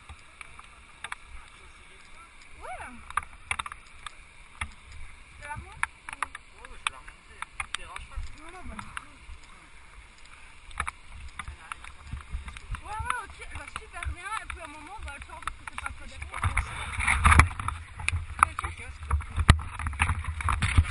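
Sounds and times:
rubbing and knocking on camera: 0:11.3 - 0:20.9.

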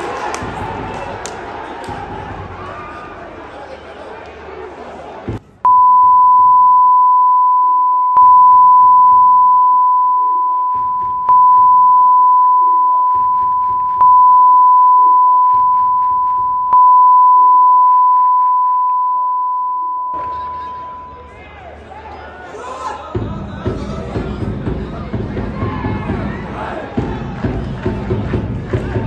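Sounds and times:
high-pitched censor bleep: 0:05.7 - 0:21.2
stadium crowd chanting: 0:23.8 - 0:29.0.

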